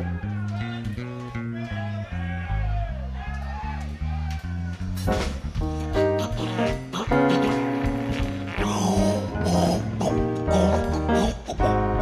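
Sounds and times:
electric bass walking line: 0:03.8 - 0:12.0.

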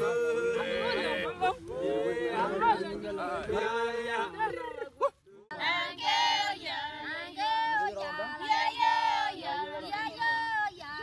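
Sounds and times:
women singing in high voices: 0:05.5 - 0:11.0.

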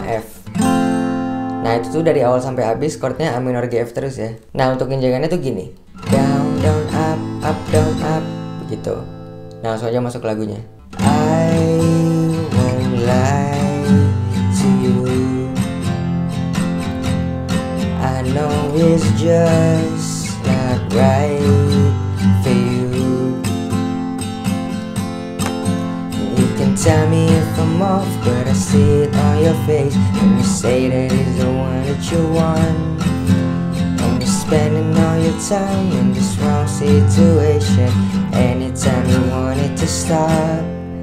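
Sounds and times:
man singing: 0:00.0 - 0:00.5, 0:01.6 - 0:05.3, 0:06.0 - 0:16.1, 0:17.9 - 0:24.0, 0:26.2 - 0:41.0
acoustic guitar strumming: 0:00.0 - 0:03.6, 0:05.8 - 0:41.0.

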